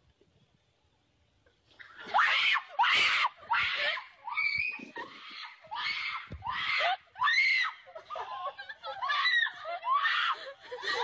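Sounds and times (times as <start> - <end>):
girl screaming: 2.1 - 7.8.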